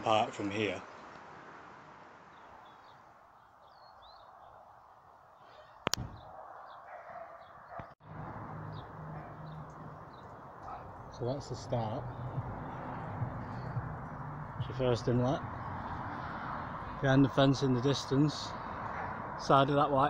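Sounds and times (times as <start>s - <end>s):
sharp click: 5.8s - 6.2s.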